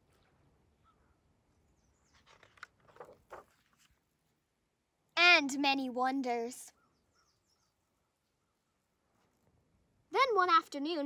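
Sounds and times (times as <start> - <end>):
paper page being turned: 2.1 - 4.0.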